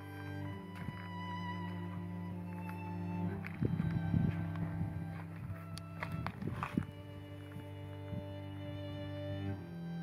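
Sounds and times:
footsteps on stony ground: 0.0 - 9.6
slow violin and cello music: 0.0 - 10.0.

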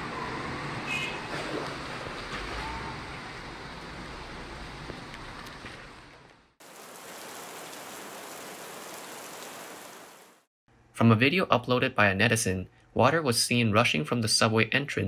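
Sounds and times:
heavy rain hiss: 6.6 - 10.5.

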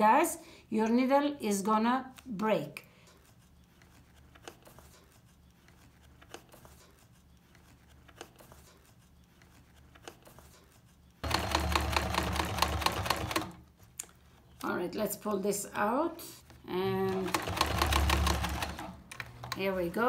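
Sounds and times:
electric sewing machine stitching: 11.2 - 13.6, 16.9 - 19.0.

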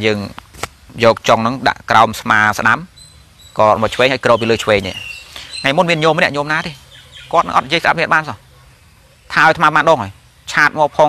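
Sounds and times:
man speaking: 0.0 - 2.9, 3.6 - 8.6, 9.3 - 11.0.

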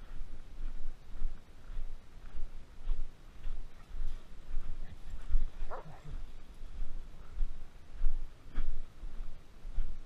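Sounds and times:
footsteps crunching through snow: 0.0 - 10.0.

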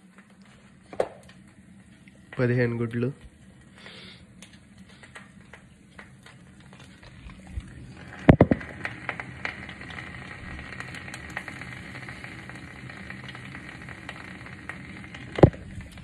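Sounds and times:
egg sizzling in frying pan: 0.0 - 16.0.

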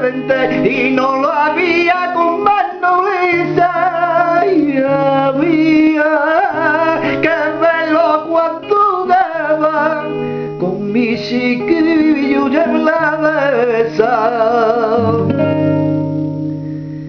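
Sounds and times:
strummed classical guitar: 0.0 - 17.0.

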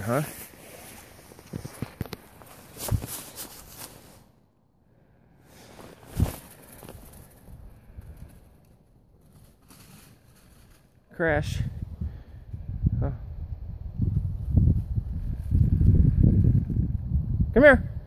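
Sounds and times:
footsteps and rustling on grass: 0.0 - 4.3, 5.6 - 8.5.

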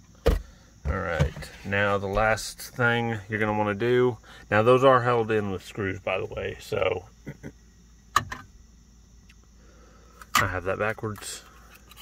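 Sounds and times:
person laughing softly: 7.2 - 7.6.

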